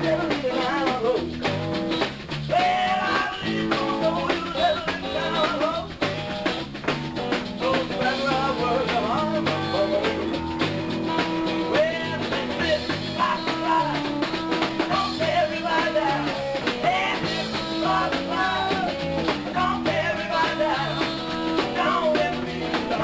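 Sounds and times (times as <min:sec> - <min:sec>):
blues-rock band playing: 0:00.0 - 0:23.0
wavering guitar lead line: 0:00.0 - 0:23.0.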